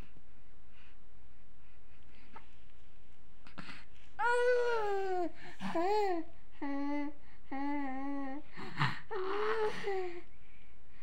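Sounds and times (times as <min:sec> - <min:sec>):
person cooing: 0:04.2 - 0:10.2.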